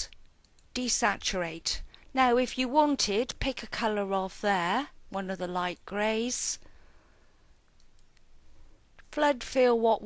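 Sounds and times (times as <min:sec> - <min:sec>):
faint computer mouse clicks: 0:00.1 - 0:00.7, 0:07.7 - 0:08.3.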